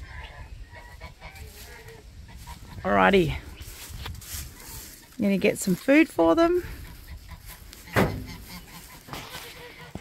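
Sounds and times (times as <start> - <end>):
turkeys and chickens clucking: 0.0 - 10.0
woman's voice: 5.2 - 6.8.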